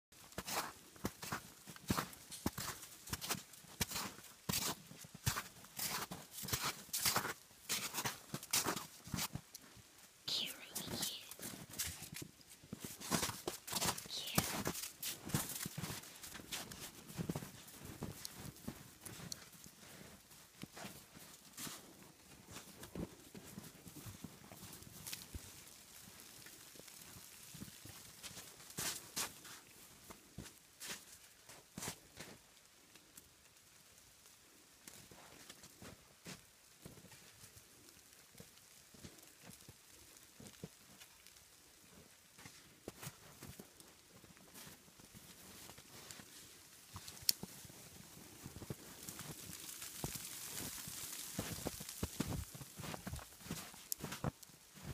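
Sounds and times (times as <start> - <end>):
footsteps crunching in snow: 0.2 - 9.8, 10.5 - 32.5, 38.4 - 54.9.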